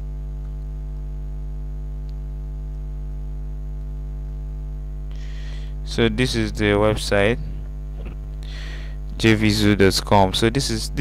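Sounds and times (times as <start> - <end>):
electrical mains hum: 0.0 - 11.0
breathy noise: 5.1 - 5.8, 7.9 - 9.1
person speaking: 5.8 - 11.0.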